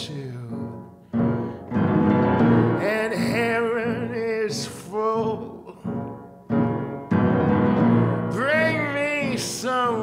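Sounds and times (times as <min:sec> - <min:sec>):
person singing: 0:00.0 - 0:00.9, 0:02.4 - 0:06.2, 0:07.8 - 0:10.0
piano chords: 0:00.0 - 0:10.0.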